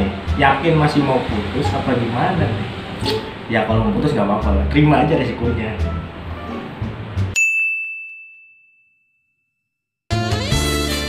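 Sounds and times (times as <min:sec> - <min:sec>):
bell-like ding: 0:07.4 - 0:09.6.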